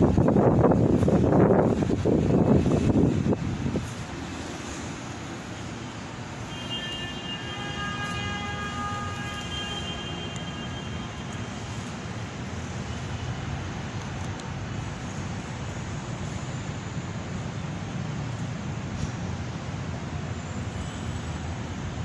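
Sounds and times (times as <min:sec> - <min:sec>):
low droning background noise: 0:00.0 - 0:22.0
faint high whine: 0:03.7 - 0:19.6.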